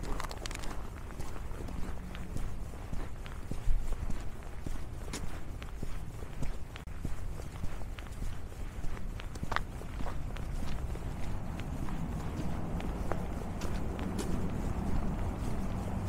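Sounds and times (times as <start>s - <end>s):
footsteps crunching on snow: 0.0s - 16.0s
steady low rumble: 0.0s - 16.0s.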